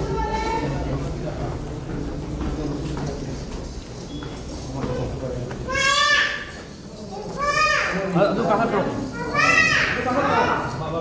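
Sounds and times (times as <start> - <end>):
crowd murmur: 0.0 - 11.0
child's high-pitched call: 5.7 - 8.1, 9.2 - 10.2.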